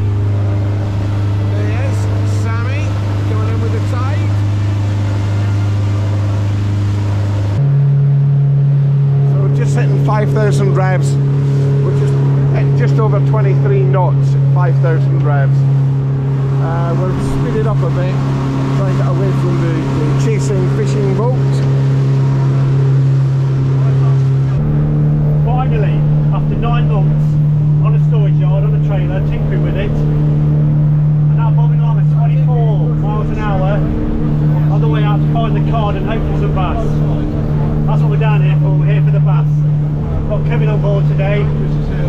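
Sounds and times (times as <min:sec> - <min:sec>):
motorboat engine at high revs: 0:00.0 - 0:42.0.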